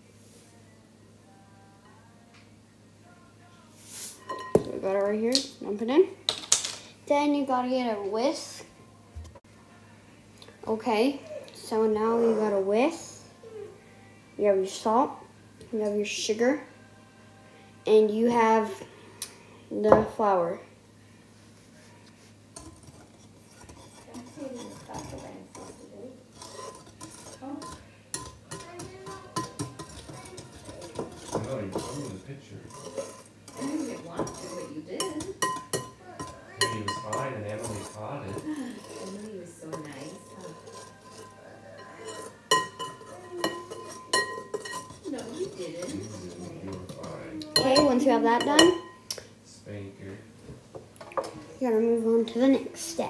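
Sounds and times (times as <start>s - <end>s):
wire whisk scraping a bowl: 22.5s - 49.0s.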